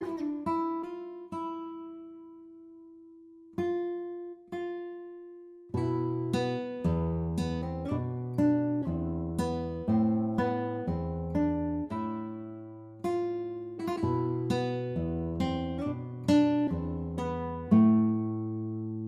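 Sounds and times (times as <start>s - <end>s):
plucked acoustic guitar melody: 0.0s - 19.0s.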